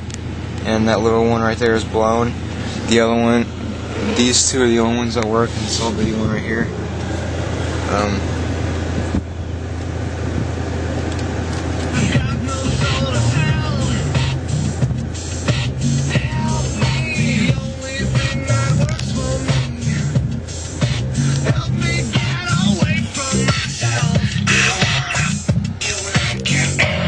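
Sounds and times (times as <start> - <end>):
steady low hum: 0.0 - 27.0
hip-hop music from car stereo: 11.7 - 27.0.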